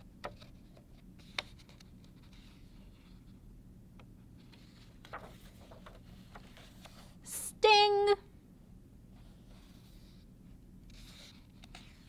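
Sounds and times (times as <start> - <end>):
book pages rustling: 0.2 - 3.4, 4.4 - 7.2, 9.2 - 12.0.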